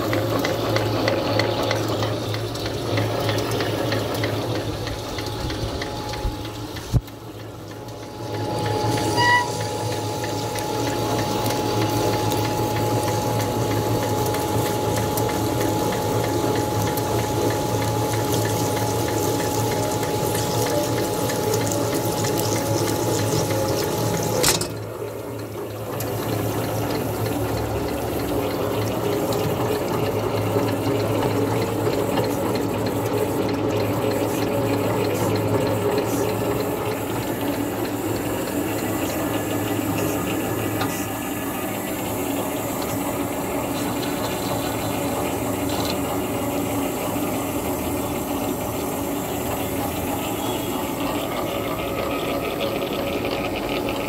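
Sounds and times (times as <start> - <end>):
coolant pouring and splashing: 0.0 - 54.0
machine motor hum: 0.0 - 54.0.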